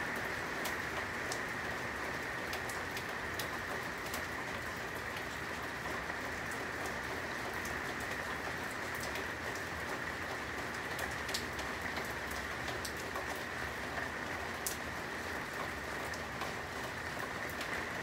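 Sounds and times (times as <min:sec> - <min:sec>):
steady hiss with light ticks: 0:00.2 - 0:18.0.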